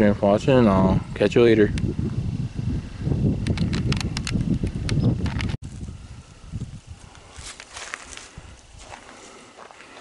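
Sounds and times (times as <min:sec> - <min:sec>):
leaves rustling: 0:05.6 - 0:10.0
footsteps on leaves: 0:06.9 - 0:10.0.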